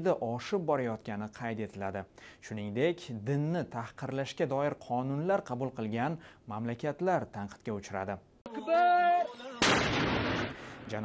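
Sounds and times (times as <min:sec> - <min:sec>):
mortar blast: 0:09.6 - 0:11.0.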